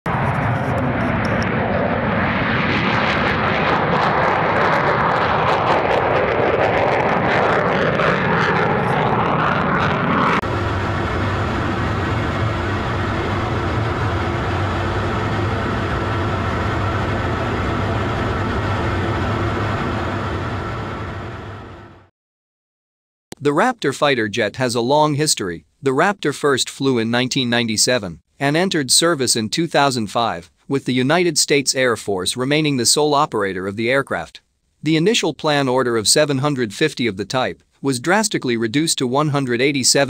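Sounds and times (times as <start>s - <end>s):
low hum: 0.1s - 22.1s
military jet engine noise: 0.1s - 22.1s, 34.9s - 40.0s.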